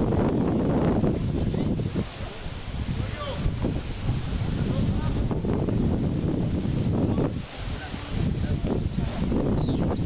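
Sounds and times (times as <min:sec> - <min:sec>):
wind rumbling on microphone: 0:00.0 - 0:10.0
high falling bird chirps: 0:08.6 - 0:10.0.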